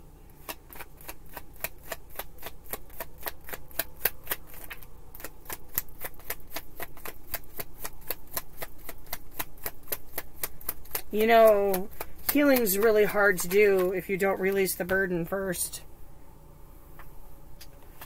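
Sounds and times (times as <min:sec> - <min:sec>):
cards being shuffled: 0:00.4 - 0:15.0.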